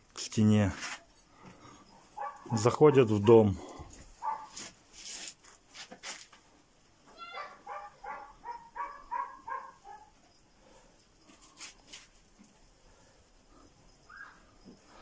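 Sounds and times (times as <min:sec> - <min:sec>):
dog barking: 0:02.2 - 0:03.6, 0:04.2 - 0:04.6, 0:07.3 - 0:10.2.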